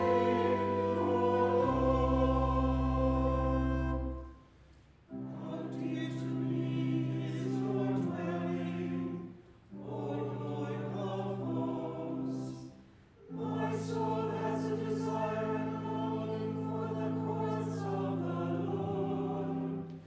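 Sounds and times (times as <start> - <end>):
church choir singing: 0.0 - 4.5, 5.1 - 20.0
pipe organ: 0.0 - 20.0.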